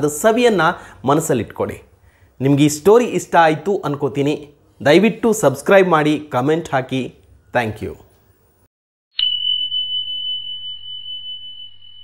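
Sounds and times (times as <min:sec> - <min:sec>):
bell ding ringing: 0:09.2 - 0:12.0.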